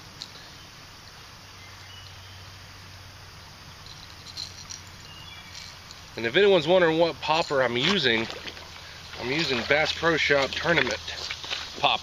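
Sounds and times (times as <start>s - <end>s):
faint hiss: 0.0s - 12.0s
faint insect or bird chirps: 0.0s - 12.0s.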